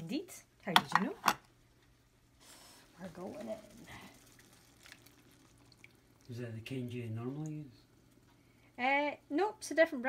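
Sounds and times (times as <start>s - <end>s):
liquid pouring into a pan: 3.0s - 8.8s
small drips and splashes: 3.0s - 9.4s.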